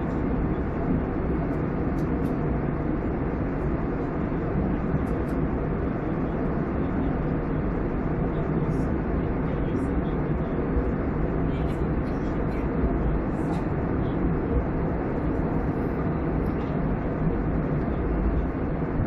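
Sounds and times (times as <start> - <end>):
airliner cabin noise: 0.0 - 19.0.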